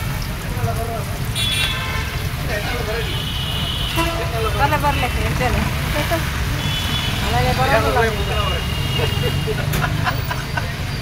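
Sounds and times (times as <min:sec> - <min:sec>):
road traffic rumbling: 0:00.0 - 0:11.0
long vehicle horn: 0:03.1 - 0:05.4, 0:06.4 - 0:09.7
background voices: 0:04.0 - 0:11.0.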